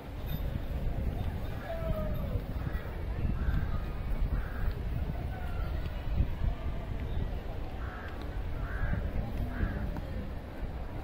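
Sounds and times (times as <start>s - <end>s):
bird cawing: 7.8s - 9.9s.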